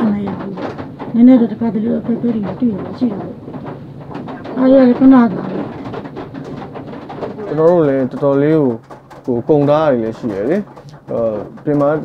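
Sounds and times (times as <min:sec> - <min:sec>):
person talking: 0:04.4 - 0:05.8, 0:07.4 - 0:12.0.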